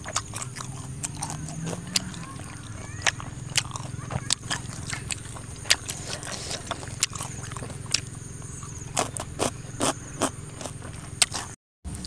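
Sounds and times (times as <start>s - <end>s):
person chewing food: 0.0s - 11.6s.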